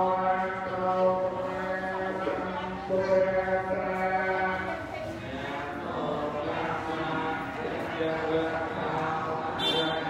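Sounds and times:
monks chanting: 0.0s - 10.0s.

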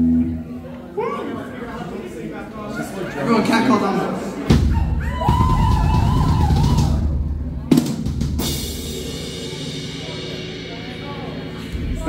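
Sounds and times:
drum hits: 4.4s - 12.0s.

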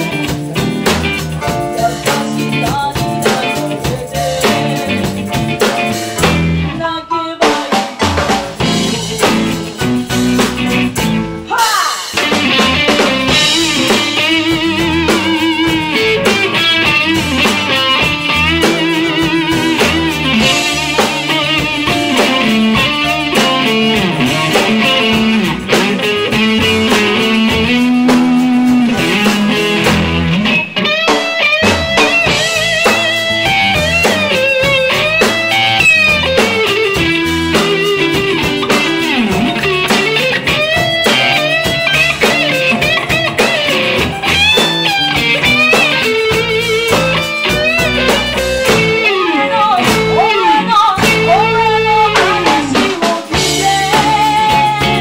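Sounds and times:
electric bass: 0.0s - 6.9s, 8.2s - 55.0s
drum kit: 0.0s - 55.0s
electric guitar with bending notes: 0.0s - 55.0s.

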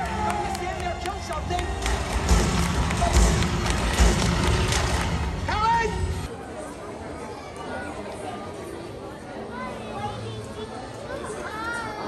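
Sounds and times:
loud music: 0.0s - 6.3s.

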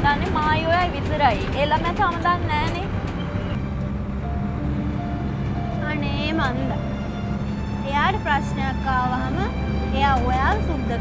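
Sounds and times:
bus engine drone: 0.0s - 11.0s
held background music notes: 0.0s - 11.0s
road rumble: 0.0s - 11.0s.

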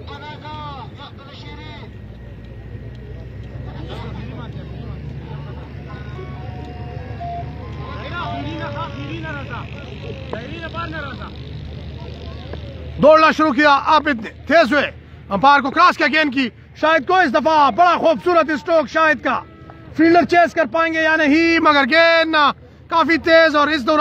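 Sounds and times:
distant voices: 0.0s - 24.0s.

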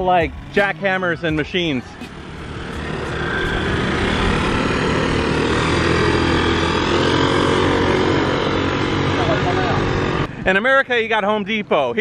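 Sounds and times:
engine running steadily: 0.0s - 10.4s.

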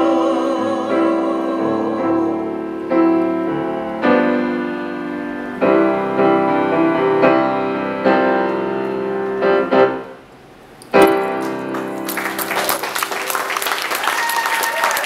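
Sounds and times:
grand piano chords: 0.0s - 14.0s.

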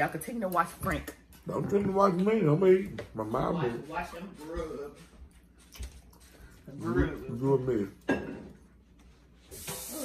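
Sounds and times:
tap running water: 9.5s - 10.0s.

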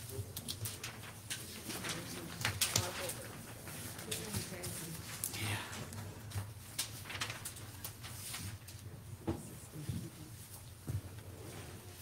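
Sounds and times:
paper rustling and shuffling: 0.0s - 12.0s.

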